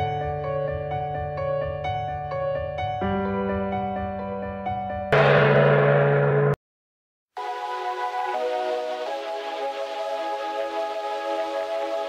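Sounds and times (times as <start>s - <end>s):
gong stroke ringing: 5.2s - 6.6s.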